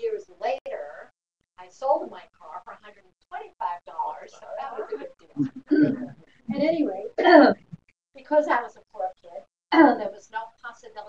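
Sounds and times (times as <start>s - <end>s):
woman speaking: 0.0s - 7.6s, 8.2s - 11.0s
woman clearing her throat: 5.4s - 6.2s, 7.2s - 7.6s.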